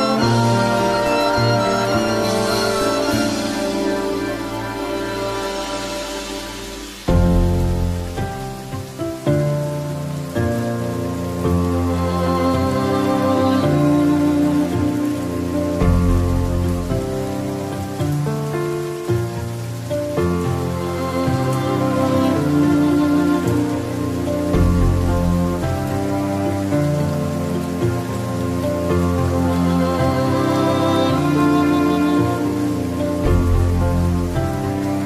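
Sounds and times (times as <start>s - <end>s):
slow instrumental music: 0.0s - 35.0s
steady rain: 0.0s - 35.0s.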